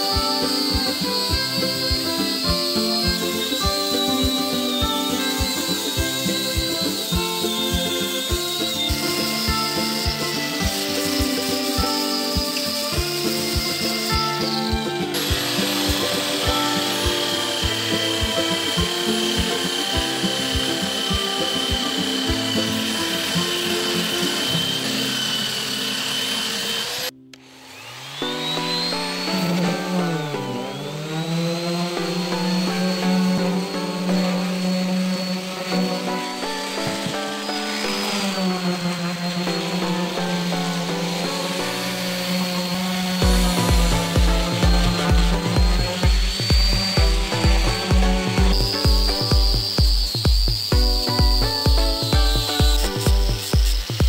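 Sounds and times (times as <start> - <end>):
music beat: 0.0 - 26.8, 28.2 - 54.0
belt sander whining: 0.0 - 54.0
orbital sander whining: 0.0 - 54.0.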